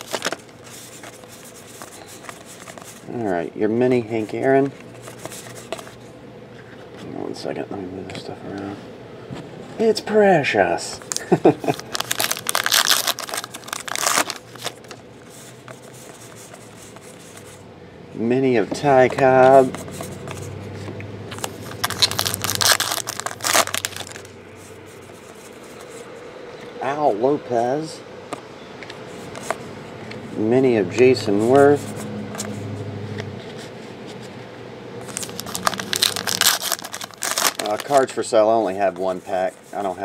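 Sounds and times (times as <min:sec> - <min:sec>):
card wrappers crinkling: 0:00.0 - 0:03.1, 0:11.0 - 0:17.6, 0:21.3 - 0:26.0, 0:35.0 - 0:40.0
quiet room hum: 0:00.0 - 0:40.0.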